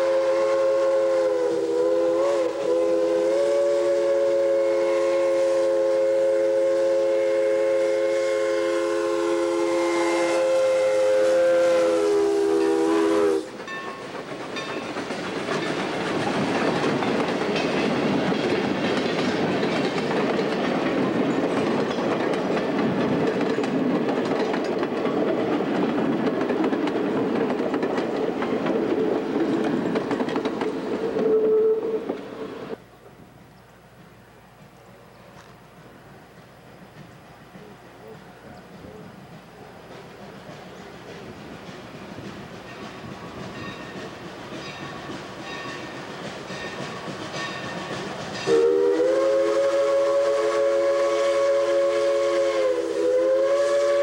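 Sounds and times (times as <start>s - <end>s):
steam locomotive whistle: 0.0s - 14.0s, 31.1s - 32.8s, 44.8s - 54.0s.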